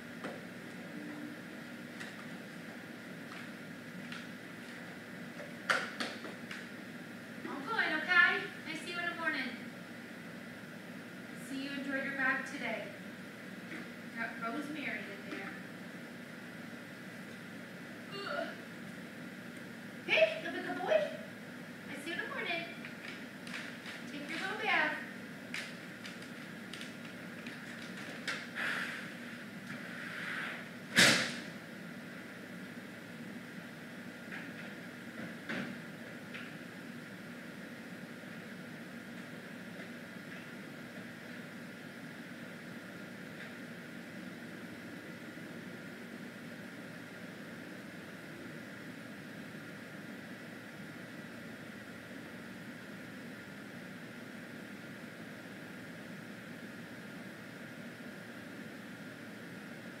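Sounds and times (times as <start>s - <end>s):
air conditioner humming: 0.0s - 60.0s.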